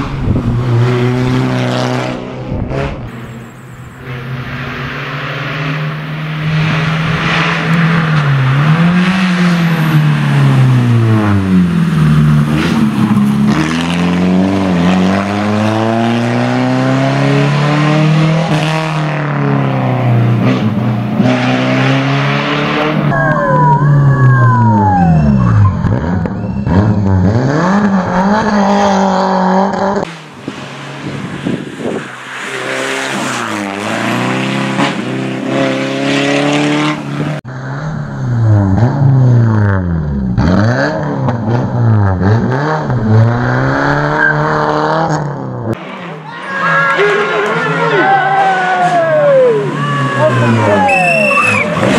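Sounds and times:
car engine revving: 0.0s - 23.4s, 25.0s - 51.9s
tyre squeal: 46.3s - 51.9s.

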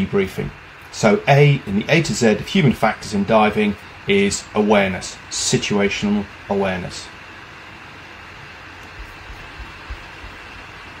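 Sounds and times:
room tone hiss: 0.0s - 11.0s
soft low thumps: 8.9s - 10.6s.

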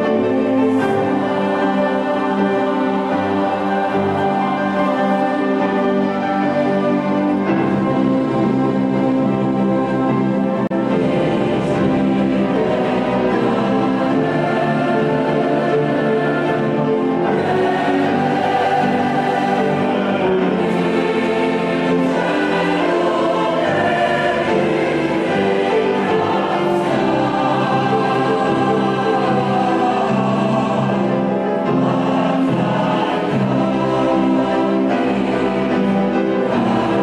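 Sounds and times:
choir singing with instruments: 0.0s - 37.0s.

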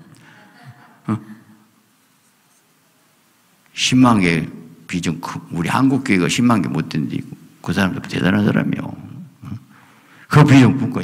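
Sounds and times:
man speaking into a microphone: 3.7s - 11.0s.

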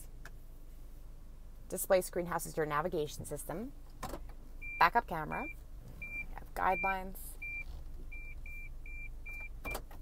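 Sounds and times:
car reverse beeper beeping: 4.6s - 9.9s.

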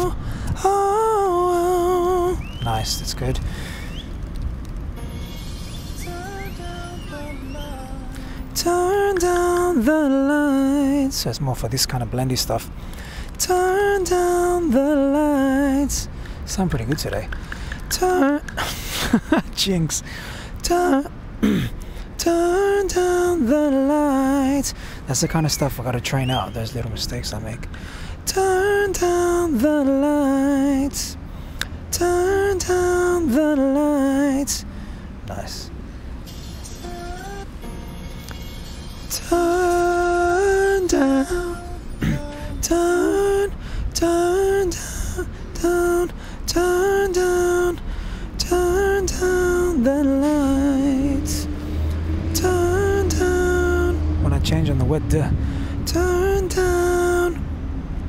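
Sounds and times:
slow ballad playing from phone: 0.0s - 2.6s, 4.9s - 11.1s, 13.4s - 16.0s, 22.2s - 24.8s, 28.3s - 31.1s, 31.9s - 34.9s, 36.2s - 54.2s, 55.9s - 57.4s
low steady rumble: 0.0s - 25.2s, 26.6s - 58.0s
man singing falsetto: 6.0s - 8.1s, 40.8s - 43.5s.

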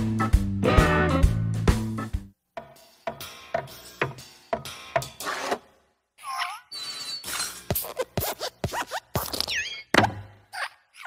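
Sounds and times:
short squeaky glide: 6.7s - 9.9s.

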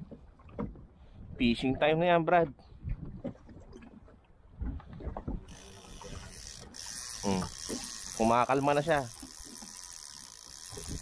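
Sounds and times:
fishing gear knocks and clicks: 4.6s - 11.0s.

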